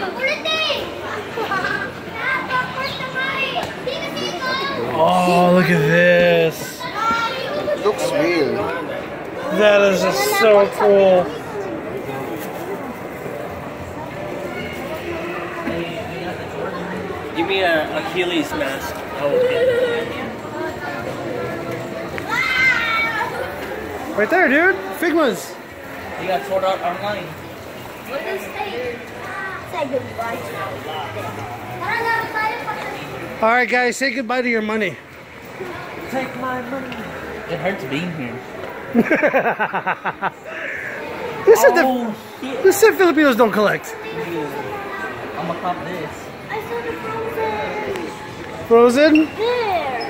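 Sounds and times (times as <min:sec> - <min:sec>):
children chattering and calling out: 0:00.0 - 0:50.0.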